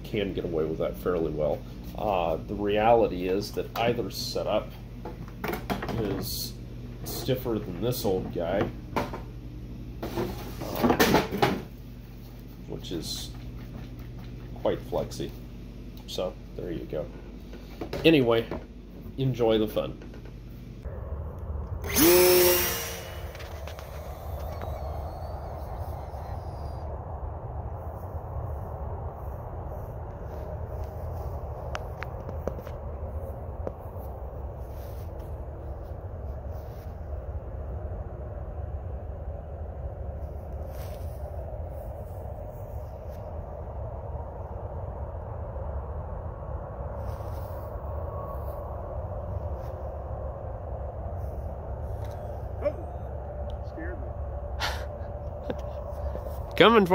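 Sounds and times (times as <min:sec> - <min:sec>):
wind rumbling on microphone: 0:20.1 - 0:56.9
model plane engine high drone: 0:20.9 - 0:38.2.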